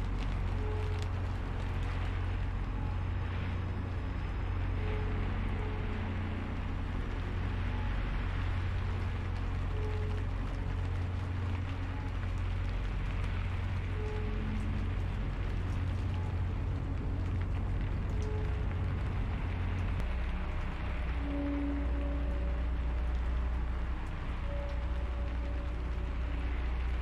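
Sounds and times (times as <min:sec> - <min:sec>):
deep low rumble: 0:00.0 - 0:27.0
rain hiss: 0:00.0 - 0:27.0.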